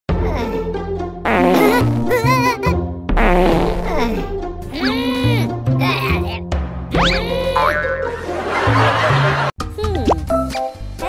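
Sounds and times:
cartoon fart sound effect: 1.3s - 2.2s, 3.1s - 4.9s.

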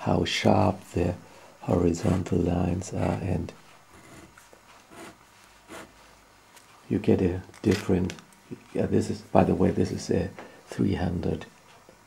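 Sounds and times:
fountain pen scratching on paper: 2.0s - 5.9s.

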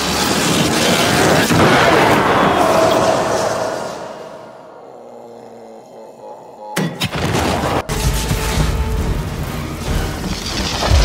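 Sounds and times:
loud blast: 1.4s - 4.4s.

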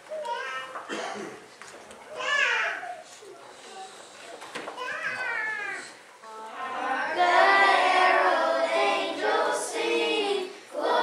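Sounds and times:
children singing: 6.3s - 11.0s.

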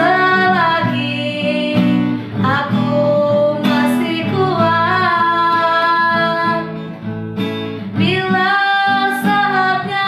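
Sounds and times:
woman singing slow song: 0.0s - 6.9s, 7.9s - 10.0s
strummed acoustic guitar: 0.0s - 10.0s.

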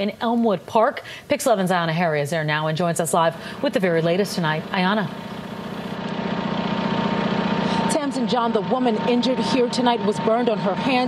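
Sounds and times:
engine idling: 3.3s - 11.0s.

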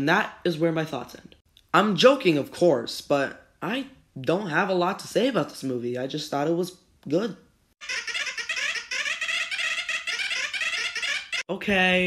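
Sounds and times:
high-pitched gibberish chatter: 7.8s - 11.6s.

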